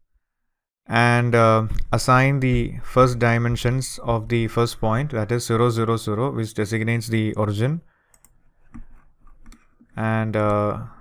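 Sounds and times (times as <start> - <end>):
faint keyboard clicks: 8.1 - 9.7.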